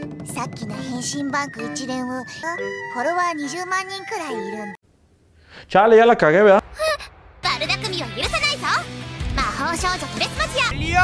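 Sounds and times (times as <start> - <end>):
light background music: 0.0 - 4.8, 7.4 - 11.0.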